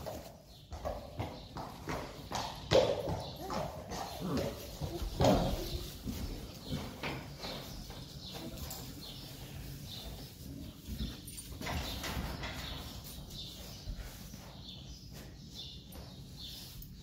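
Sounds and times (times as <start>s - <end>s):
hooves knocking and shuffling: 0.0s - 17.0s.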